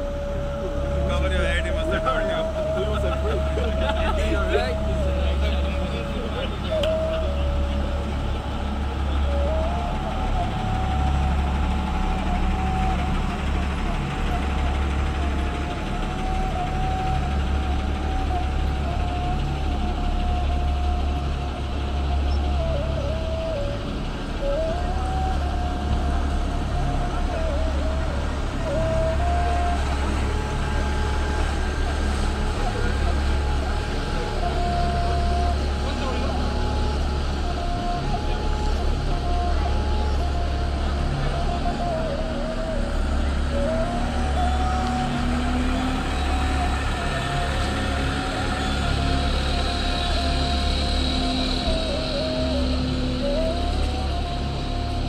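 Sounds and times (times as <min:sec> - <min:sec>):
diesel engines idling: 0:00.0 - 0:55.0.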